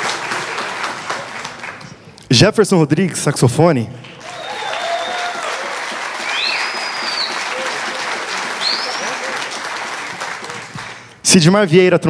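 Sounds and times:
audience applauding: 0.0s - 2.0s, 4.0s - 11.2s
high whistles: 4.2s - 10.9s.

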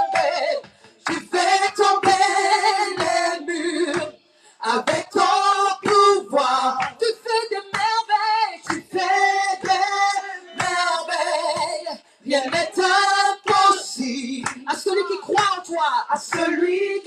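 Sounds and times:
woman singing worship song: 0.0s - 17.0s.

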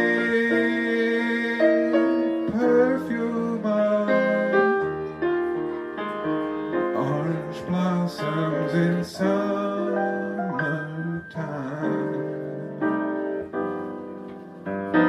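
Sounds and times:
man singing jazz: 0.0s - 5.1s, 6.8s - 13.2s
grand piano playing chords: 0.0s - 15.0s.

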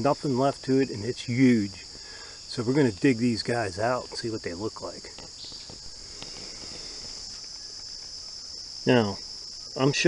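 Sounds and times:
insects singing: 0.0s - 10.0s.

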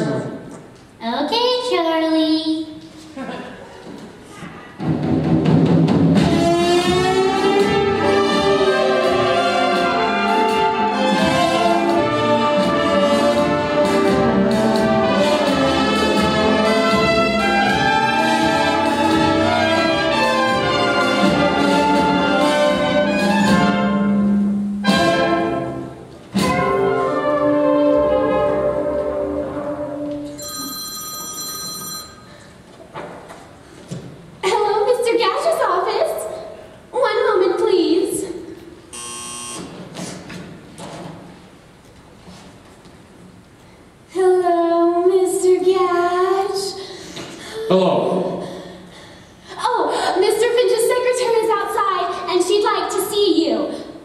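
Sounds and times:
pit orchestra with brass: 6.2s - 30.1s
steady buzzing tone: 38.9s - 39.9s.

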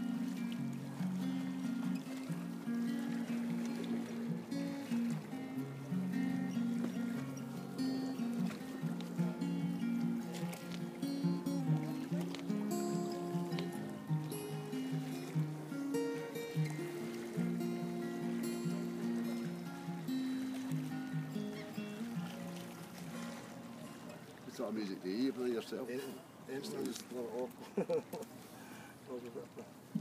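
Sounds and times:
acoustic guitar picking: 0.0s - 24.3s.

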